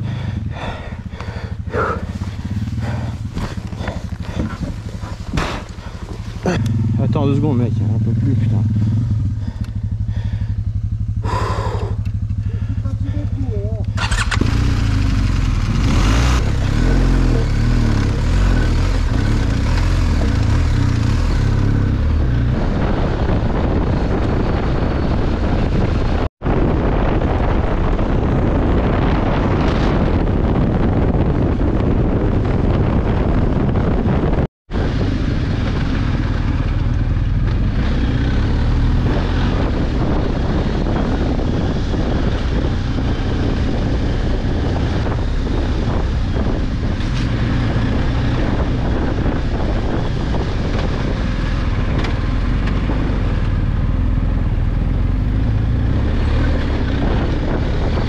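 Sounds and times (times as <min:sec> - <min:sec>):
motorcycle engine: 0:00.0 - 0:58.0.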